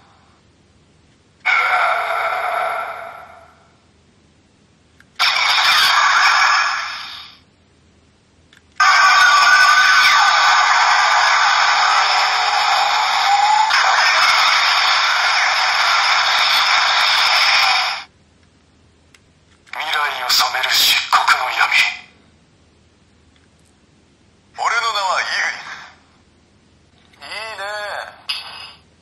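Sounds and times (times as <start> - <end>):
toy speaker voice clips: 19.7 - 22.0.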